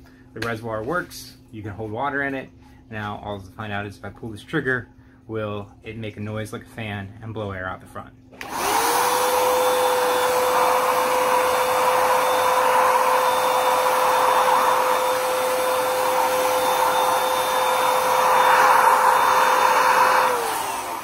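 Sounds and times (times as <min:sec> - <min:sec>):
sprayer fan motor whining: 0:08.4 - 0:21.0
air rushing from nozzle: 0:09.8 - 0:21.0.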